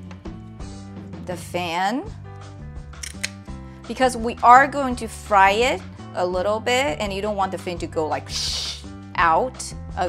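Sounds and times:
background music sustained notes: 0:00.0 - 0:10.0
kitchen shears snipping: 0:03.0 - 0:03.4.

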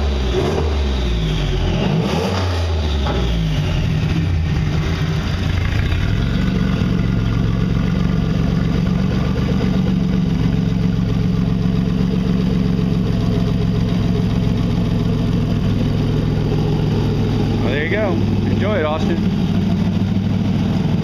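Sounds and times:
car engine idling: 0:02.8 - 0:21.0.

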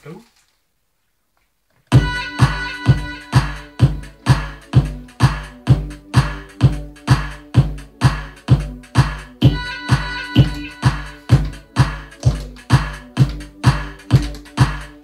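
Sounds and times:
sustained synth notes: 0:01.9 - 0:04.7, 0:09.4 - 0:12.2
electronic dance music: 0:01.9 - 0:15.0
steady kick drum: 0:01.9 - 0:15.0.

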